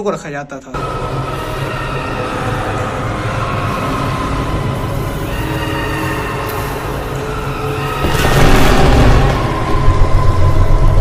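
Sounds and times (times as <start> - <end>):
eerie rumbling drone music: 0.7 - 11.0.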